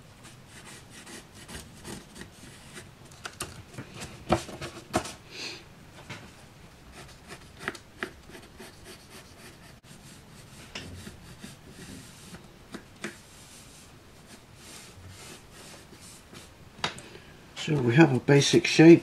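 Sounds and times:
pencil scratching on card: 0.2s - 2.8s, 6.9s - 12.4s.

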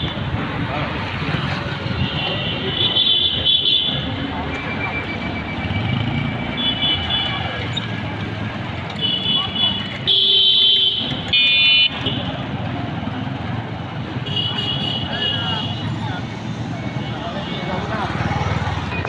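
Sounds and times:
motorcycle engines passing: 0.0s - 19.0s
vehicle horn toots: 9.0s - 12.3s.

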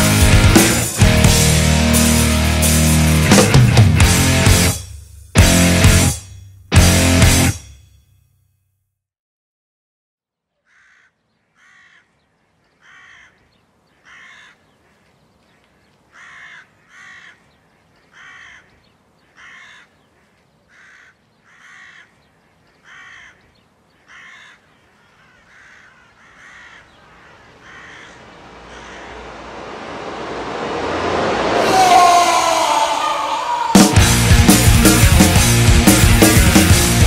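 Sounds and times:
crow cawing: 10.6s - 29.4s
wind rushing: 26.9s - 35.4s.

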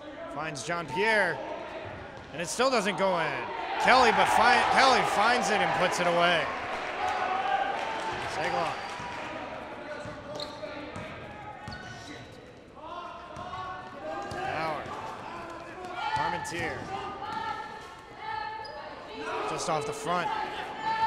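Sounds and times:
voices in large hall: 0.0s - 21.0s.

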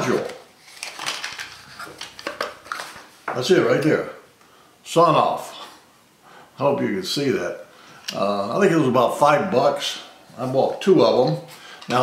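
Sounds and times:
cardboard and plastic rustling: 0.0s - 3.8s.

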